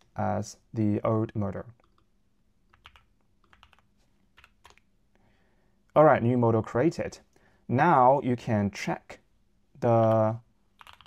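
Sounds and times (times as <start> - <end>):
computer keyboard keystrokes: 2.7 - 4.9, 10.8 - 11.0.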